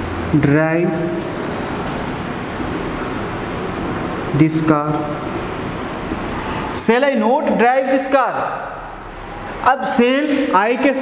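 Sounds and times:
steady hiss and rumble: 0.0 - 11.0.

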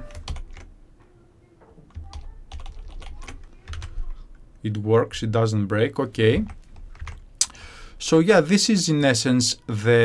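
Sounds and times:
computer keyboard typing: 0.0 - 0.7, 1.9 - 4.2, 6.4 - 7.2.

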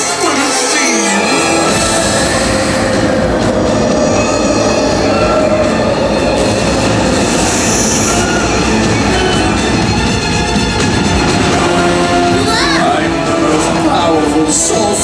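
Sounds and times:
dramatic music over loudspeakers: 0.0 - 15.0.

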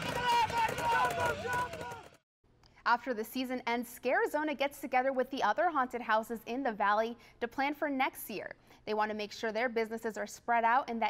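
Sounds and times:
people shouting high-pitched: 0.0 - 2.2.

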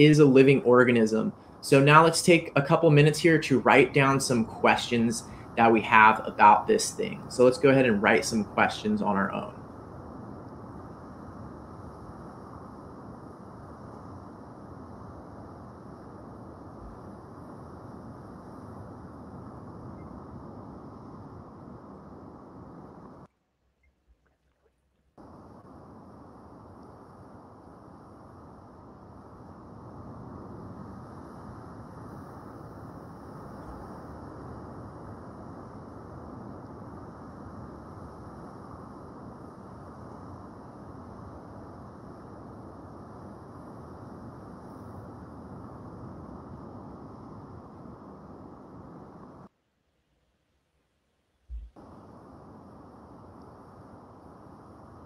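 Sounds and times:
low rushing noise: 0.0 - 23.3.

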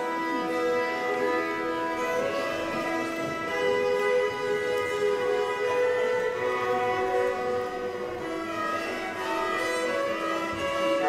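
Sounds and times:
fiddle duet: 0.0 - 11.0.

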